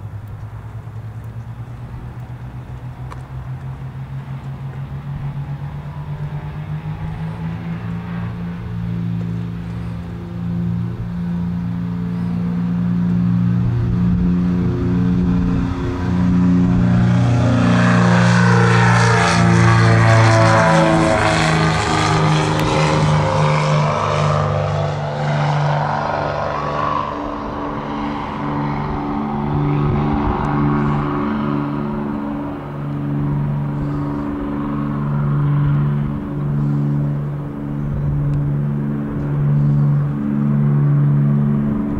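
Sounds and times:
propeller aircraft taking off: 0.0s - 41.9s.

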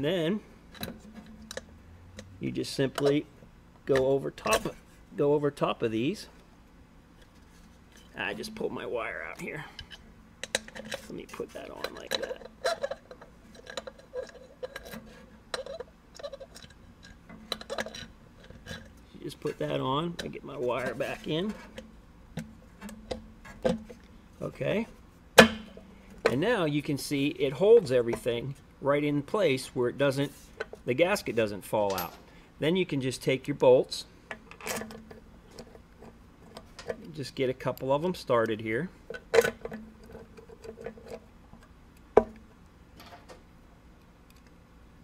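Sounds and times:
metal cover clicking and tapping: 9.8s - 11.0s.

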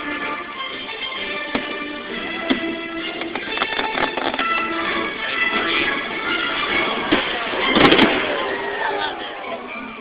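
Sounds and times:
music: 0.0s - 10.0s
fireworks banging: 5.5s - 8.8s.

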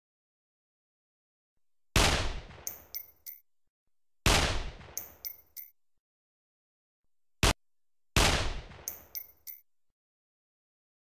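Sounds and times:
gunshots: 2.0s - 2.8s, 4.2s - 5.1s, 8.2s - 9.1s.

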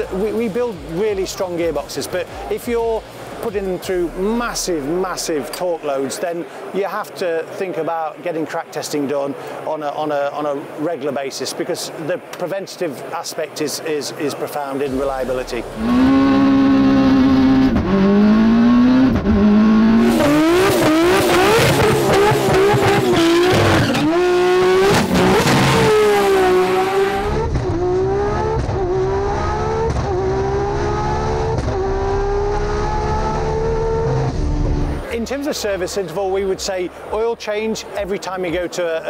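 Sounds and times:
race car engines accelerating: 14.9s - 36.0s.

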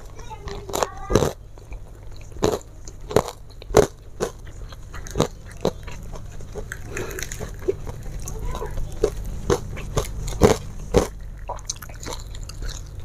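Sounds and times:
person chewing crunchy food: 0.0s - 13.0s.

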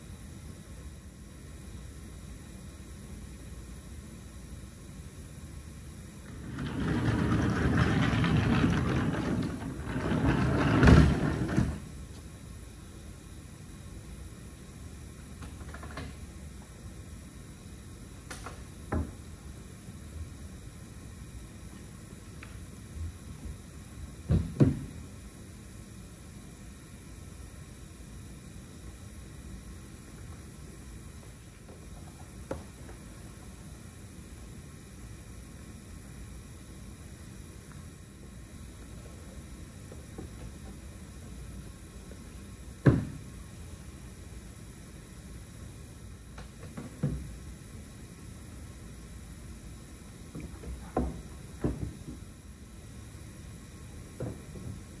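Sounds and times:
hall room tone hiss and rumble: 0.0s - 55.0s
wheeled case rolling on casters: 6.3s - 11.8s.

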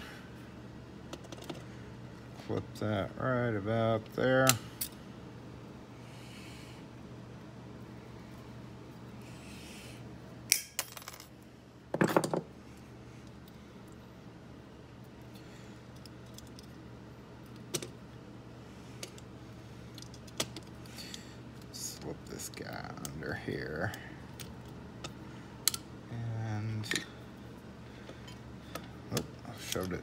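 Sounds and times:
steady low hum: 0.0s - 30.0s
metal parts clinking on workbench: 10.5s - 11.3s.

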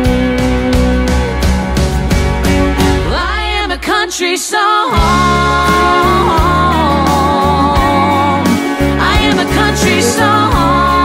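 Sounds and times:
country band accompaniment: 0.0s - 4.1s, 4.9s - 11.0s
woman singing: 3.0s - 11.0s.

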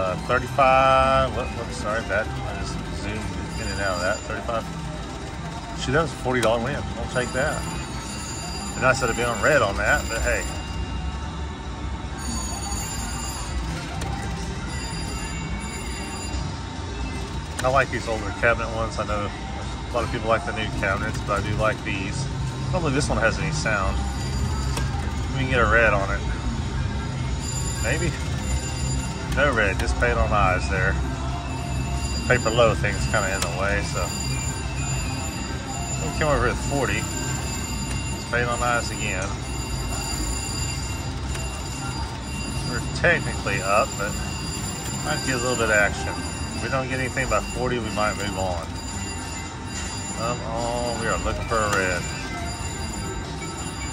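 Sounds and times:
casino crowd din: 0.0s - 53.9s
slot machines ringing: 0.0s - 53.9s.

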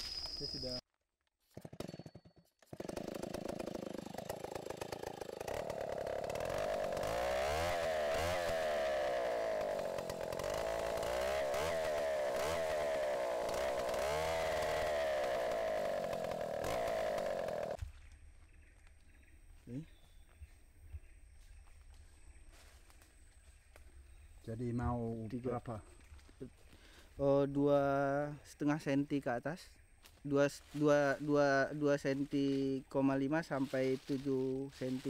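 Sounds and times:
power auger engine running: 2.7s - 17.8s.

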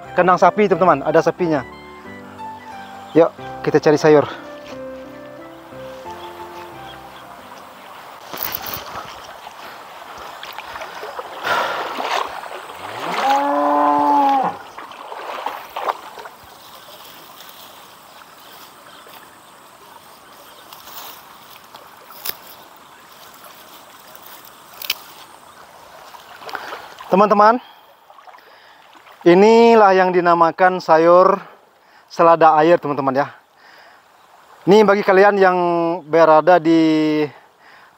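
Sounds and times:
stream rushing: 0.0s - 31.1s
cow mooing: 12.9s - 14.7s.

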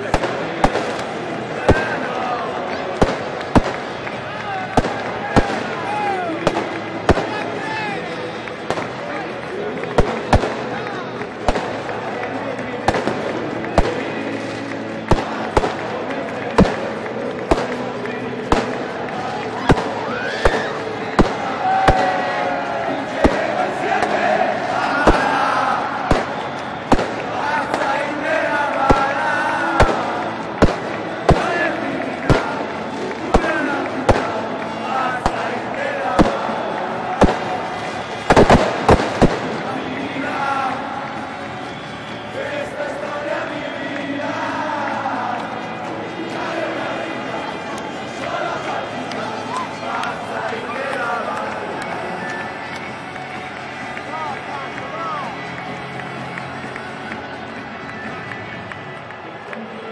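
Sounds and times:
firecrackers banging: 0.0s - 42.4s
stadium crowd shouting and cheering: 0.0s - 59.9s.

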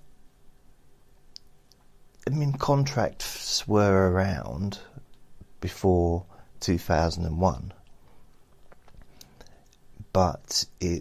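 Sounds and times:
small faint clicks: 1.3s - 2.3s, 5.0s - 5.5s, 7.8s - 9.9s.

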